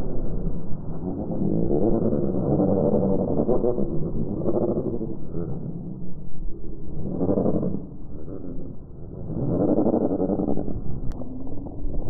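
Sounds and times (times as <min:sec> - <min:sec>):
slowed gull calls rumbling drone: 0:00.0 - 0:12.0.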